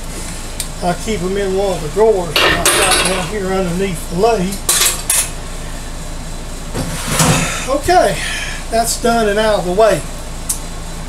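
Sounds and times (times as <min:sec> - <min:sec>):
low machine hum: 0:00.0 - 0:11.0
metal drawer rumbling shut: 0:06.7 - 0:07.5.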